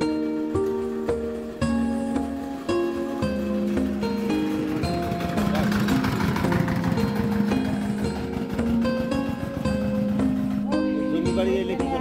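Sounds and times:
plucked-string background music: 0.0s - 12.0s
small engine chugging: 1.3s - 12.0s.

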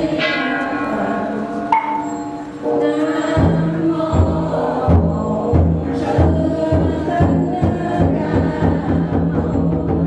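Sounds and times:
bell ringing: 0.2s - 3.3s.

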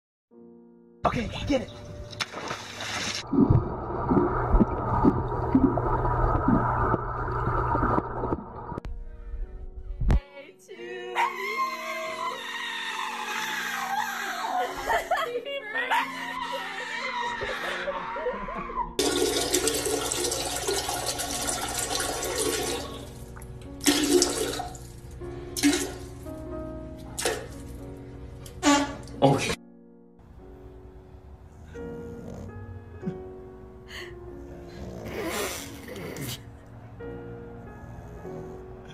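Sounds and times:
dog splashing into pool: 2.2s - 5.8s
liquid splashing into water: 2.2s - 8.8s, 19.0s - 24.9s, 25.6s - 26.3s, 27.2s - 27.8s
underwater bubbling: 3.2s - 8.8s.

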